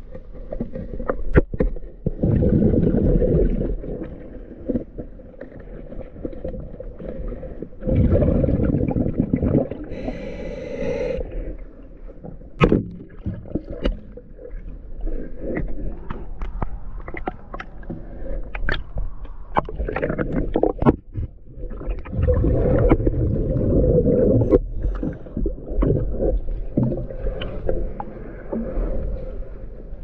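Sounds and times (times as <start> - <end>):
low rumbling underwater noise: 0.0 - 30.0.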